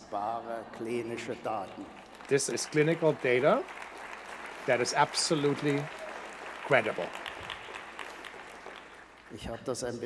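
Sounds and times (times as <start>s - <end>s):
audience applauding: 0.7s - 9.7s.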